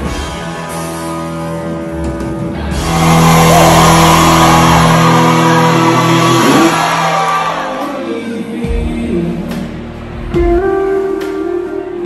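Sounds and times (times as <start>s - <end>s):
crowd cheering and shouting: 2.7s - 8.8s
live band sustained chord: 2.8s - 8.6s.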